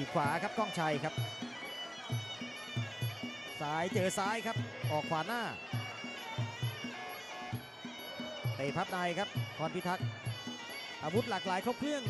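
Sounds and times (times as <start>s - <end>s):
commentator speaking: 0.0s - 1.2s, 3.6s - 5.6s
drum beat: 0.2s - 10.5s.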